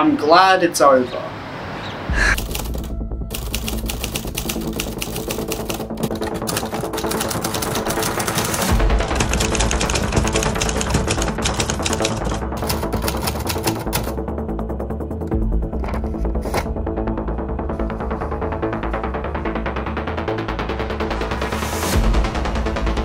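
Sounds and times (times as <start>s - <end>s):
background music: 2.1s - 23.0s
manual typewriter typing: 2.3s - 14.2s.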